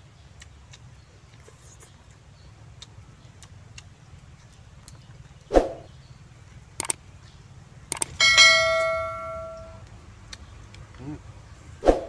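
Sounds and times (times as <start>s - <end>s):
bright bell ding: 8.2s - 9.8s.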